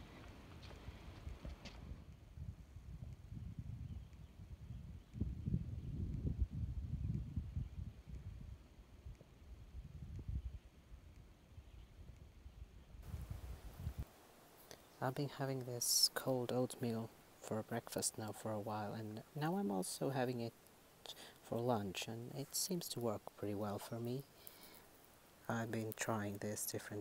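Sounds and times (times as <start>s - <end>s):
wind buffeting microphone: 0.0s - 14.1s.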